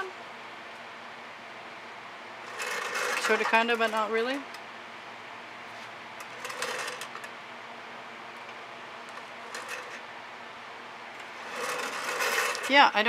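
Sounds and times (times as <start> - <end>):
faint room hum: 0.0 - 13.0
board scraping on tabletop: 11.3 - 12.7.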